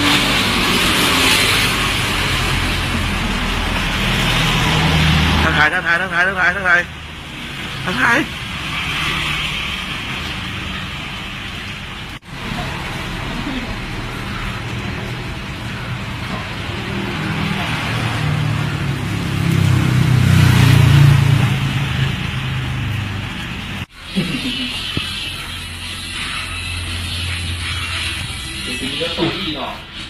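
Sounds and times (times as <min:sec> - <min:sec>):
road traffic noise: 0:00.0 - 0:30.0.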